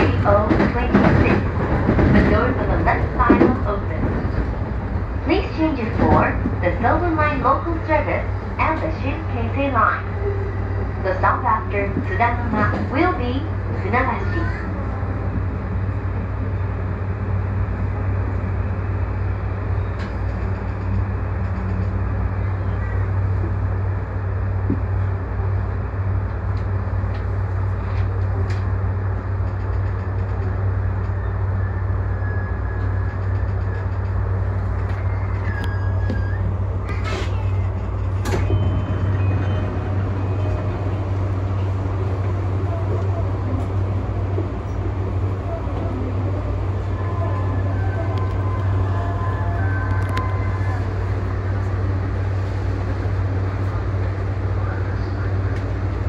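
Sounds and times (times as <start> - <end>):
electric train running hum: 0.0 - 56.0.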